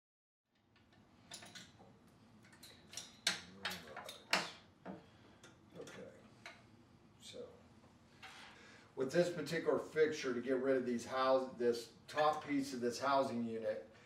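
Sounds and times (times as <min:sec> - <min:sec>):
clicks of light fixture parts: 0:00.6 - 0:01.8, 0:02.4 - 0:06.7.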